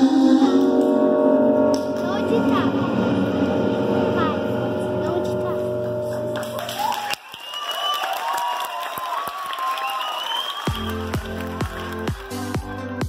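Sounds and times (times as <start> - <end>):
audience clapping and cheering: 6.1 - 13.0
electronic dance track: 10.7 - 13.0.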